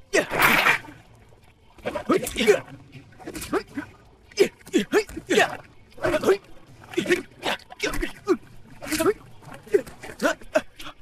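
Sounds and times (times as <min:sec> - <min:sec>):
men grunting and yelling: 0:03.4 - 0:11.0.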